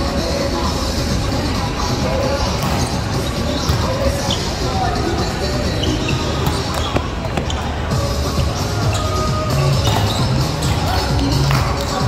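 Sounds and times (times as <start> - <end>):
background music: 0.0 - 12.0
players' voices: 0.0 - 12.0
volleyball thumps echoing in hall: 2.5 - 5.1.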